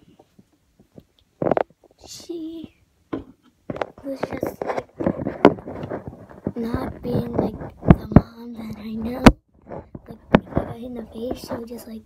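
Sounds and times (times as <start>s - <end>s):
girl speaking: 2.0s - 2.8s, 4.0s - 4.8s, 6.5s - 9.4s, 10.0s - 12.0s.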